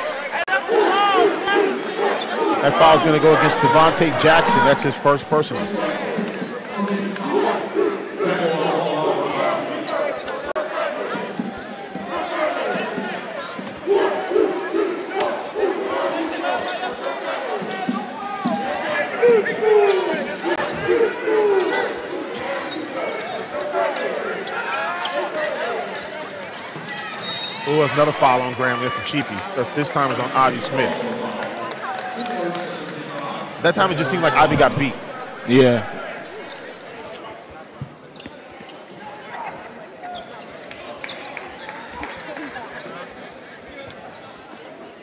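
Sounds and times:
voices calling out: 0.0 - 11.4
referee whistle: 27.1 - 27.9.

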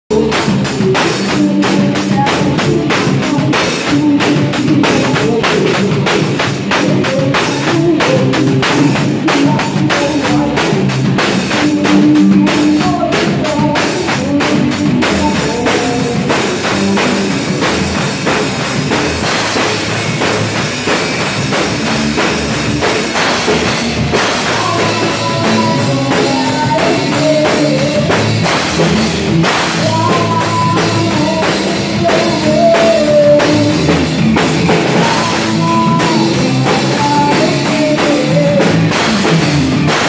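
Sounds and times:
drum kit: 0.0 - 40.0
electric bass: 0.0 - 40.0
electric guitar: 0.1 - 40.0.

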